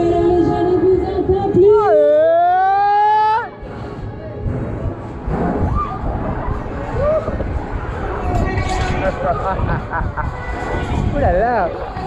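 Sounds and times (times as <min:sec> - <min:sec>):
wind rumbling on camera: 0:03.8 - 0:12.0.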